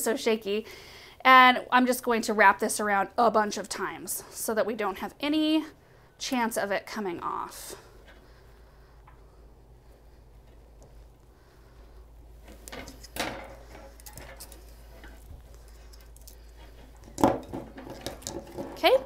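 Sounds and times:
wire clinking and scraping: 12.4 - 19.0.

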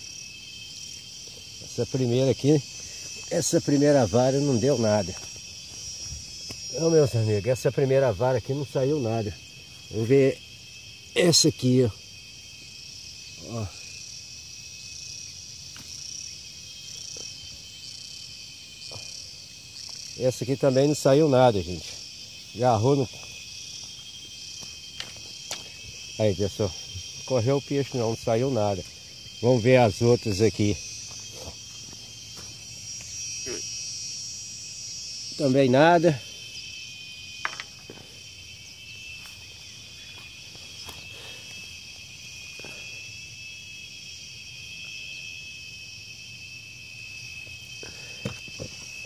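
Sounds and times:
insects chirring: 0.0 - 49.0.

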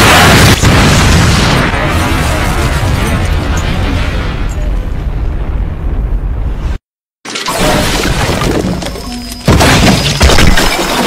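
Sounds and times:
deep rumbling explosion: 0.0 - 6.8.

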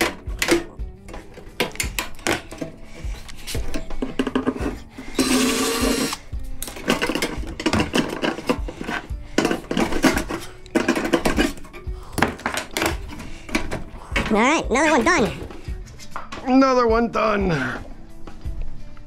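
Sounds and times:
metal casing clattering: 0.0 - 4.9, 6.5 - 14.4
background music: 0.0 - 19.0
cordless drill running: 5.0 - 6.3.

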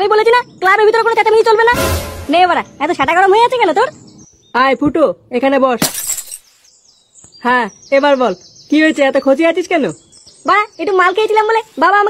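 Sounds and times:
hissy crash sound effect: 1.8 - 2.8.

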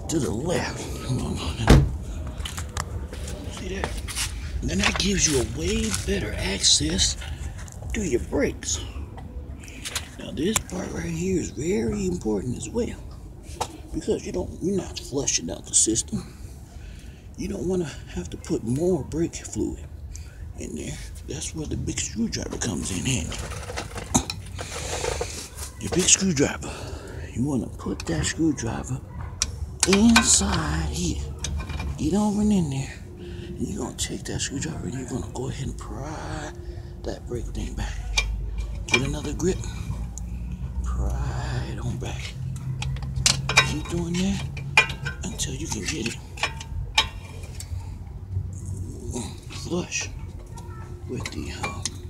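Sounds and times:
man talking: 0.0 - 2.0, 3.3 - 9.0, 9.9 - 13.1, 13.9 - 16.4, 17.4 - 19.9, 20.5 - 24.3, 25.7 - 29.1, 29.8 - 38.2, 38.8 - 40.0, 40.8 - 42.4, 43.5 - 46.5, 48.6 - 50.2, 51.0 - 52.0
screwdriver clinking on metal: 42.5 - 47.7.

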